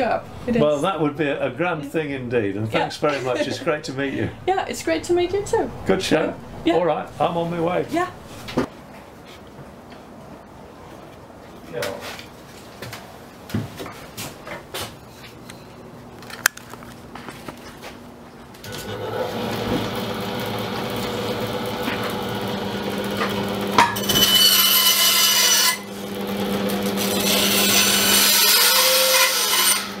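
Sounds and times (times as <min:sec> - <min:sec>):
band saw humming: 0:02.9 - 0:08.7, 0:18.7 - 0:30.0
band saw cutting wood: 0:18.7 - 0:30.0.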